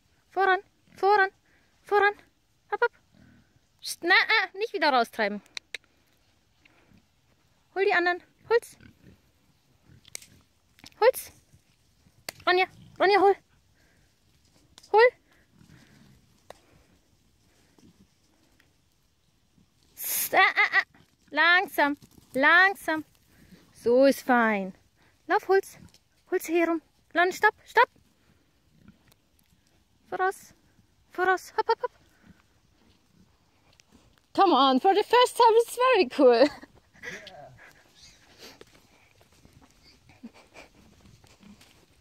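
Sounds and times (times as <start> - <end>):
faint low field sounds: 0.0 - 42.0.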